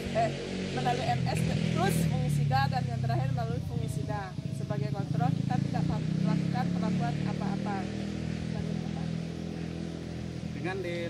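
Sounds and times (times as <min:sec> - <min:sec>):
woman speaking: 0:00.0 - 0:07.9
low engine drone: 0:00.0 - 0:11.0.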